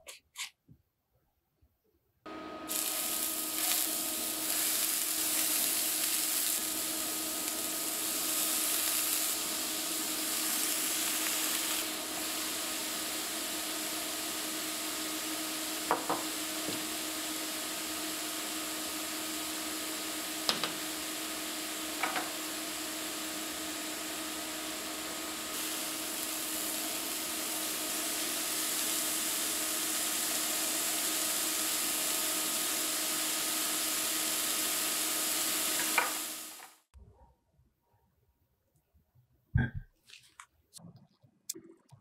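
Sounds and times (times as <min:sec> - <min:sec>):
burgers sizzling on a skillet: 0:02.6 - 0:36.7.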